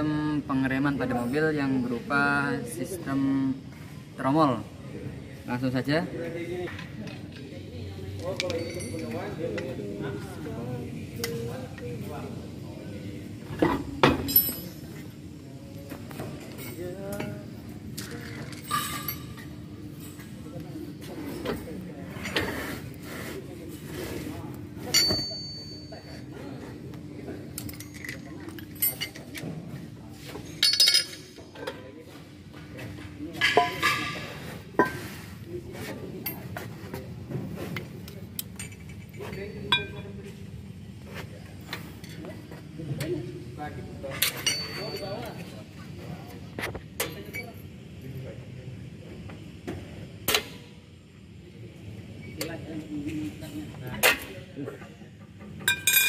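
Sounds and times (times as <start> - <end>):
metal tools clinking and clanking: 8.3 - 9.7, 13.6 - 15.1, 18.0 - 20.3, 24.8 - 26.2, 27.6 - 29.5, 30.3 - 31.8, 33.4 - 35.0, 38.4 - 40.1, 44.1 - 45.5, 47.0 - 47.6, 55.6 - 56.0.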